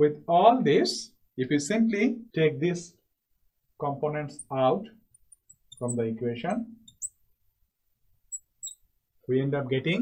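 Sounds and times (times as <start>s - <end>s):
marker squeaking on glass: 4.3s - 6.1s, 6.8s - 7.2s, 8.3s - 8.9s.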